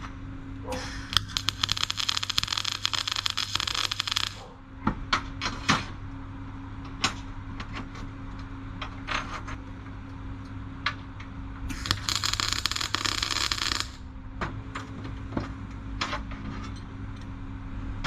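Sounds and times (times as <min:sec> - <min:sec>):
welding arc crackling: 0:00.8 - 0:04.5, 0:11.7 - 0:14.1.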